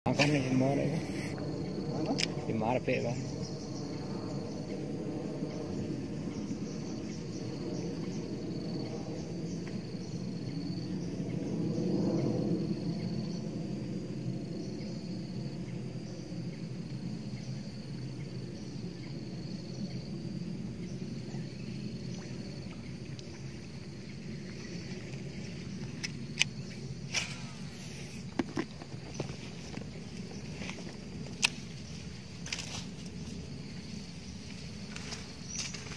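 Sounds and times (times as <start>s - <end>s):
insects droning: 0.1s - 35.9s
sharp clicks: 31.3s - 31.6s.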